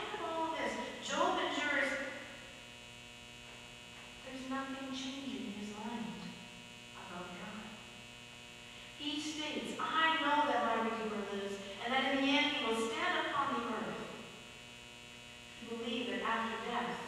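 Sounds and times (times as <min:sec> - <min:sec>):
person speaking: 0:00.0 - 0:02.2, 0:09.0 - 0:14.1, 0:15.6 - 0:17.0
electrical mains hum: 0:00.0 - 0:17.0.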